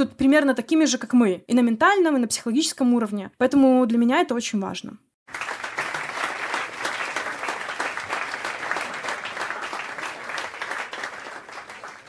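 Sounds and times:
audience applauding: 5.3s - 12.0s.

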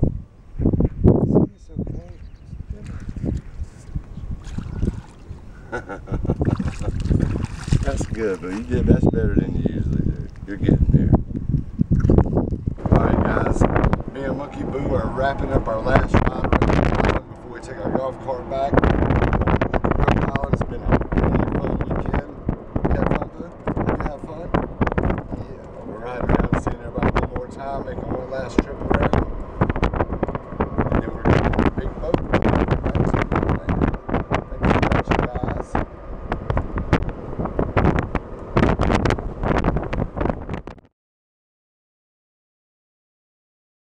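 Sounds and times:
wind buffeting microphone: 0.0s - 40.9s
man's voice: 7.9s - 11.2s, 12.8s - 18.8s, 19.9s - 24.5s, 25.3s - 29.2s, 30.9s - 35.8s.

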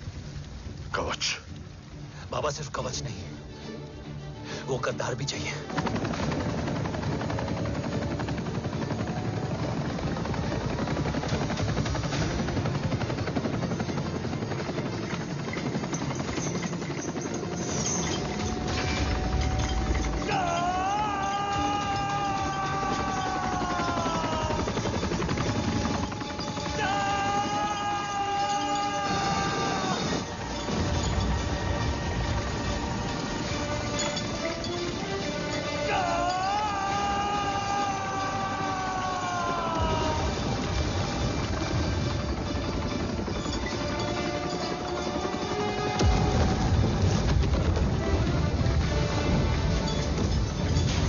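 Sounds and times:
dramatic background score: 0.0s - 51.0s
voice holding long sliding notes: 20.3s - 25.0s.

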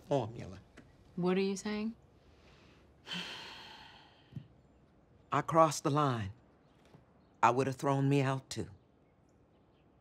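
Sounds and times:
woman sighing: 3.0s - 4.3s.

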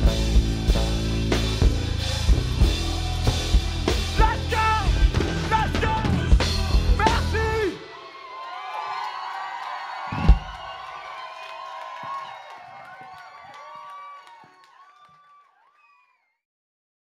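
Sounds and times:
music with drums: 0.0s - 7.8s
crowd cheering and shouting: 0.0s - 16.3s.

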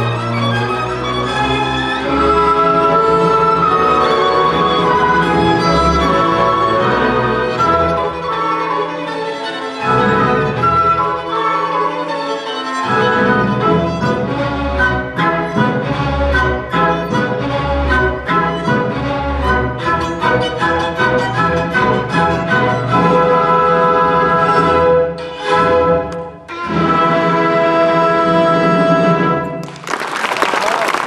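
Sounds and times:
solo violin: 0.0s - 29.0s
string orchestra: 0.0s - 31.0s.

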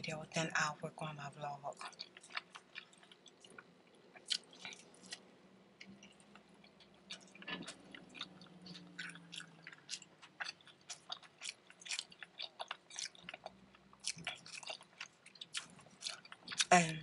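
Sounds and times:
wet chewing: 1.7s - 16.7s.

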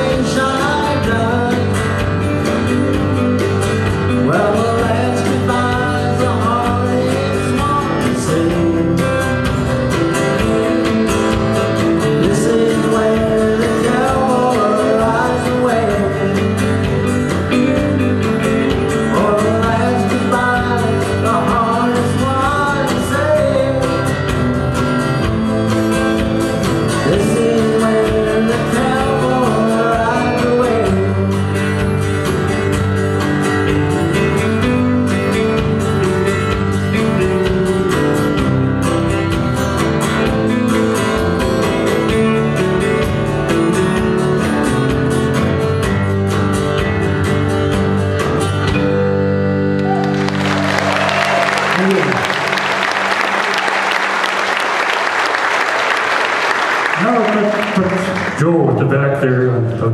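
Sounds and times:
country band playing: 0.0s - 59.9s
audience applause: 49.8s - 58.8s.

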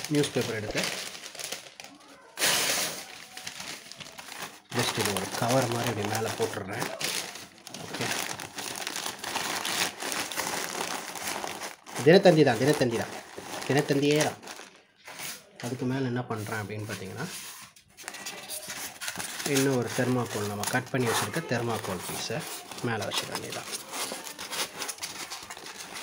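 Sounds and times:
newspaper crumpling: 0.0s - 26.0s.

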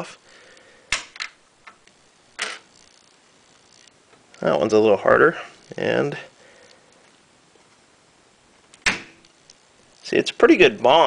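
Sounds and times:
sharp crack of part popping off: 0.9s - 1.8s, 8.7s - 9.4s.

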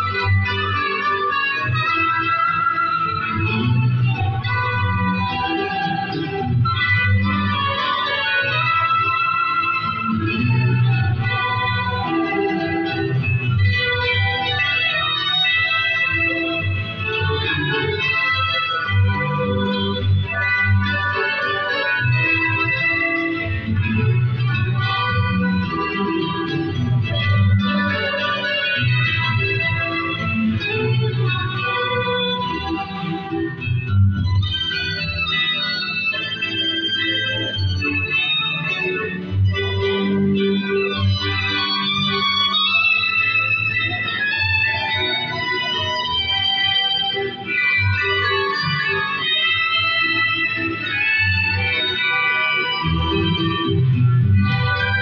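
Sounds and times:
electronic keyboard melody: 0.0s - 55.0s.

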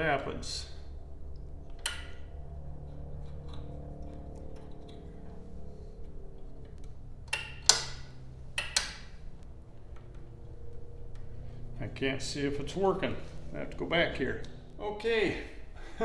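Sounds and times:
low steady hum: 0.0s - 16.0s
sharp switch clicks: 7.3s - 9.1s.

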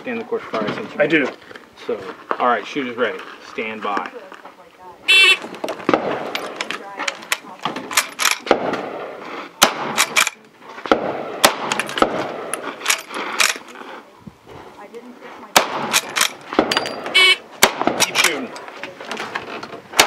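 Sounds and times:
rifle shots: 5.1s - 6.8s, 7.6s - 13.7s, 15.5s - 18.5s
rifle lever clicks and clatter: 6.3s - 8.5s, 10.0s - 10.4s, 11.7s - 13.8s, 15.9s - 17.1s, 18.0s - 19.8s.

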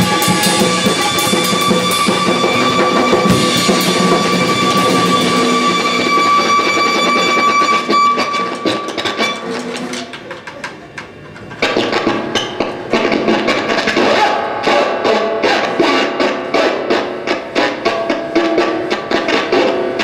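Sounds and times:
electric guitar: 0.0s - 9.3s
drum kit playing: 0.0s - 9.5s.

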